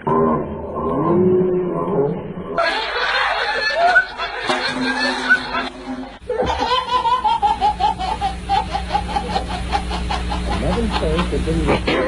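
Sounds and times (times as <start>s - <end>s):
baby laughing: 2.6s - 12.0s.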